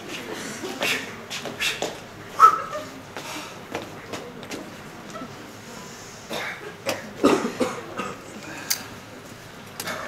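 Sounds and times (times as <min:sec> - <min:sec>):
person coughing: 0:06.3 - 0:08.2.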